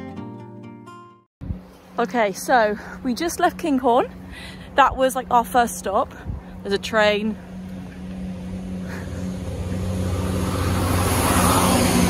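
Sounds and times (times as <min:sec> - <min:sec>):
diesel train engine hum: 0:01.5 - 0:12.0.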